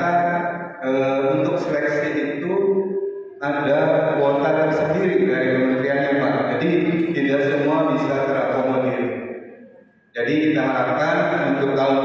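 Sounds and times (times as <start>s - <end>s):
man speaking over loudspeakers: 0.0s - 2.7s, 3.4s - 9.2s, 10.2s - 12.0s.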